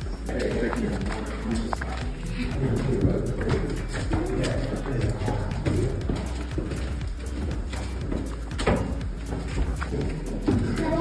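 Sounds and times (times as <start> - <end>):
indistinct voices: 0.0 - 8.4, 9.3 - 11.0
background music: 0.0 - 11.0.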